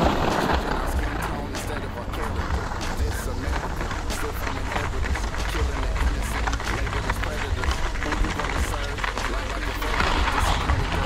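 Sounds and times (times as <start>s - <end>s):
footsteps on packed snow: 0.0s - 11.0s.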